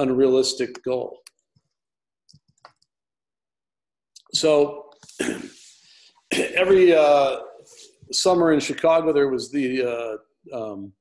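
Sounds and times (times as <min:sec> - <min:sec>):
man speaking: 0:00.0 - 0:01.3, 0:04.2 - 0:05.6, 0:06.3 - 0:11.0.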